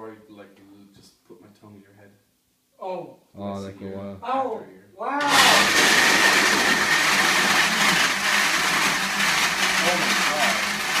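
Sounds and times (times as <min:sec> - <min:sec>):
blender running: 0:05.2 - 0:11.0.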